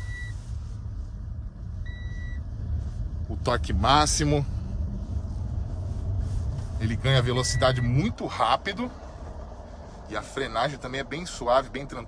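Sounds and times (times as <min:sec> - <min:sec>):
road and drivetrain rumble: 0:00.0 - 0:12.0.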